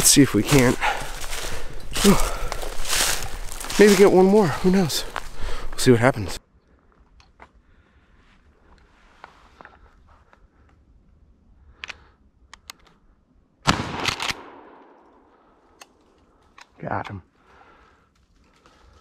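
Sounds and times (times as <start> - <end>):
faint clicks: 11.8 - 13.0
shotgun shot: 13.6 - 15.0.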